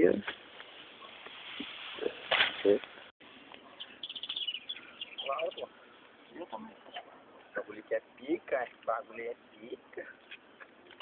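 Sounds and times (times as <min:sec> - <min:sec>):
high-pitched bird chirps: 0:03.8 - 0:05.7.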